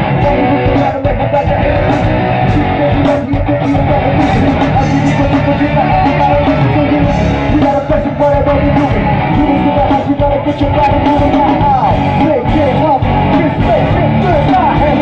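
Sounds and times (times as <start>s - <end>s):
electric guitars: 0.0s - 15.0s
steady drum beat: 0.0s - 15.0s.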